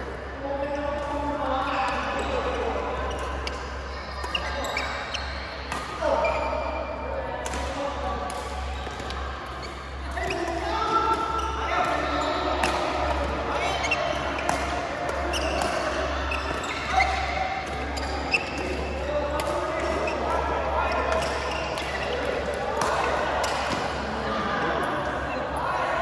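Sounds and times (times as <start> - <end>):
shoe squeaks on court floor: 4.2 - 5.5, 15.3 - 18.6
badminton racket hitting shuttlecock: 11.1 - 18.8, 19.4 - 20.1.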